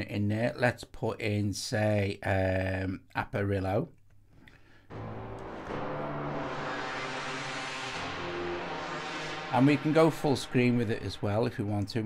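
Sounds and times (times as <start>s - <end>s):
sustained synthesizer chord: 4.9s - 11.6s.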